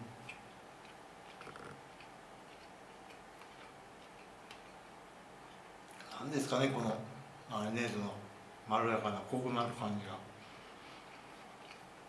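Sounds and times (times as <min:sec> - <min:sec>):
faint closed-mouth chewing: 0:00.0 - 0:06.2, 0:10.4 - 0:12.0.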